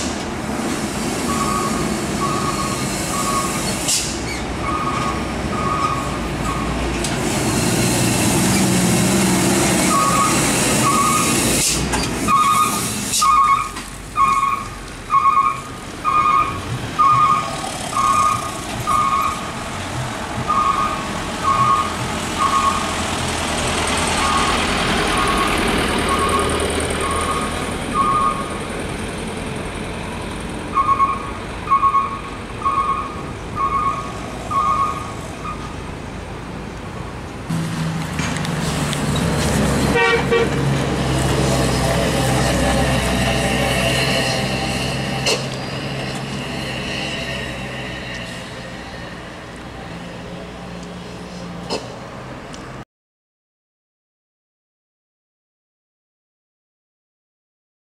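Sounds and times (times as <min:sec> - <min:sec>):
truck warning beeper: 0:01.3 - 0:03.7, 0:04.6 - 0:06.8, 0:09.9 - 0:11.4, 0:12.3 - 0:19.5, 0:20.4 - 0:23.0, 0:24.2 - 0:28.6, 0:30.7 - 0:35.8
truck engine running: 0:07.4 - 0:46.5.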